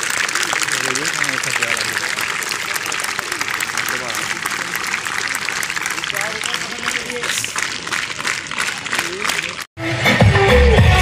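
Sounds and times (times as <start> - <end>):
crowd clapping: 0.0 - 9.7.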